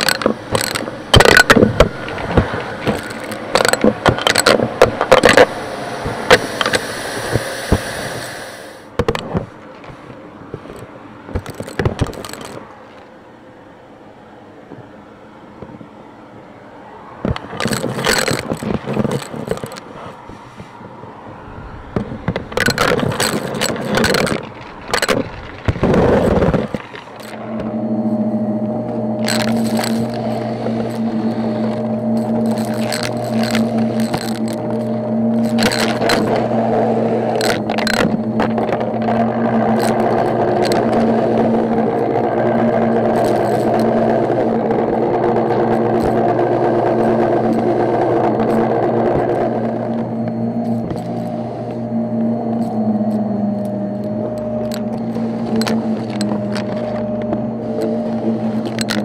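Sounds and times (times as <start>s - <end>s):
vacuum cleaner motor hum: 21.3s - 59.0s
debris crackling in vacuum: 21.4s - 59.0s.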